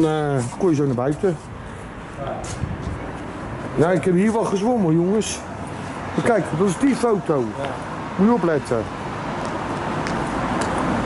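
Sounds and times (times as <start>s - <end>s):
car passing on road: 0.0s - 11.0s.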